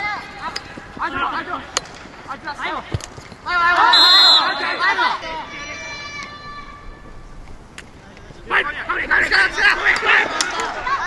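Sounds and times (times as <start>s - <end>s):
lacrosse sticks clacking: 0.2s - 3.8s, 9.3s - 10.9s.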